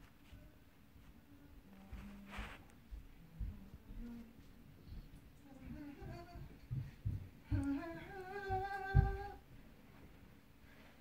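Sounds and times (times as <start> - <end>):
person humming a tune: 5.5 - 6.6, 7.5 - 9.4.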